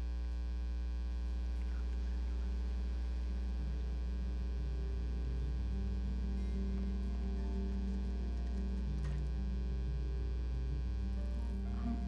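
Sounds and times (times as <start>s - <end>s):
electrical mains hum: 0.0s - 12.0s
faint ticks: 6.6s - 9.7s.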